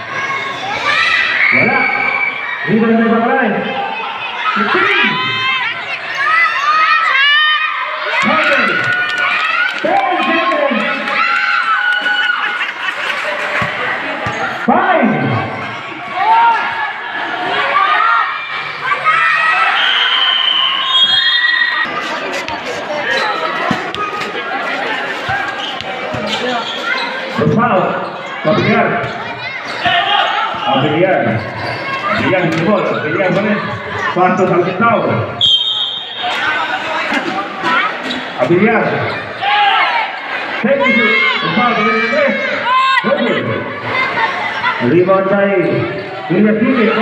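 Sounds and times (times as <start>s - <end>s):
echoing voices talking and shouting: 0.0s - 47.0s.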